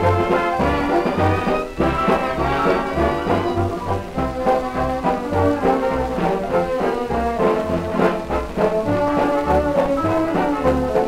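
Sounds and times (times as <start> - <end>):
dance band fox-trot recording: 0.0 - 11.0.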